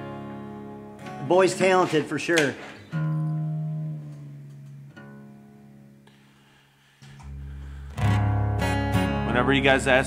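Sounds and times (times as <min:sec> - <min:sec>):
guitar strings plucked: 0:00.0 - 0:06.1, 0:07.0 - 0:10.0.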